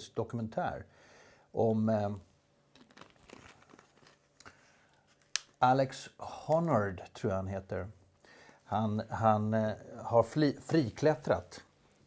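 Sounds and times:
plastic water bottle crinkling: 0:02.7 - 0:05.6.

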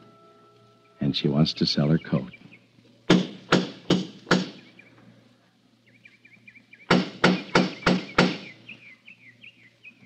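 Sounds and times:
birds chirping faintly: 0:00.0 - 0:10.0.

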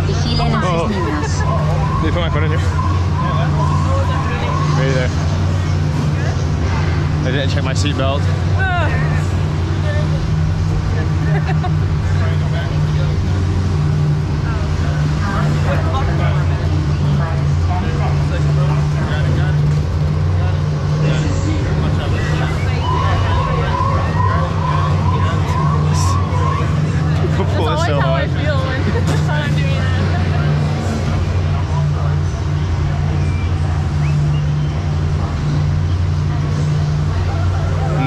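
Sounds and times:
indistinct voices: 0:00.0 - 0:38.0
ride vehicle humming: 0:00.0 - 0:38.0.

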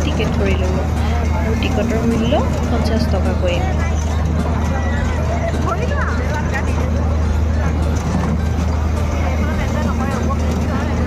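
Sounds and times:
loud low machine hum: 0:00.0 - 0:11.0
music: 0:00.0 - 0:11.0.

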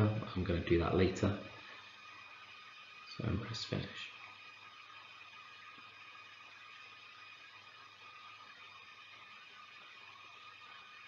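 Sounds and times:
thin steady tones: 0:00.0 - 0:11.0.

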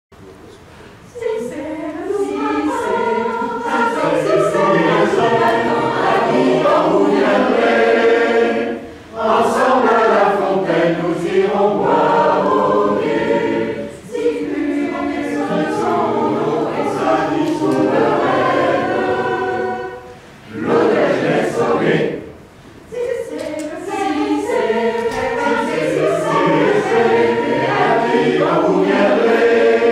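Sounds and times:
mixed choir singing: 0:01.0 - 0:29.9.

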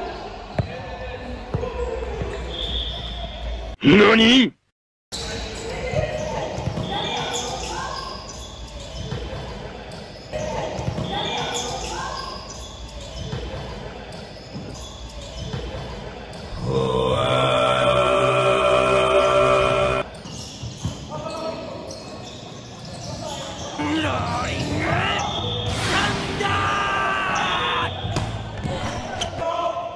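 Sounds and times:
players' voices in a gym: 0:00.0 - 0:29.9.

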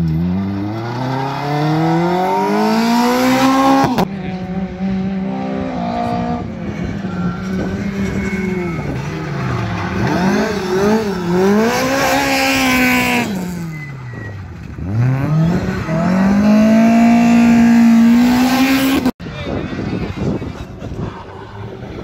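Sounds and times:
rally car engine revving: 0:00.0 - 0:22.0.

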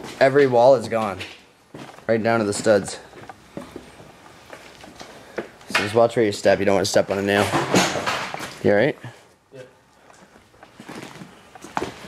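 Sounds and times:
footsteps crunching over debris: 0:00.0 - 0:05.7, 0:10.0 - 0:12.0.

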